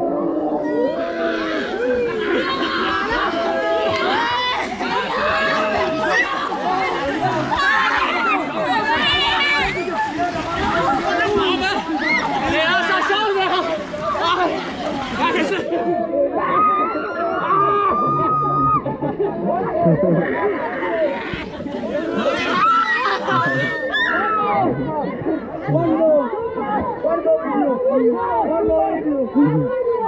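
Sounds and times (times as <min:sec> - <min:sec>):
children shouting and calling out: 0:00.0 - 0:30.0.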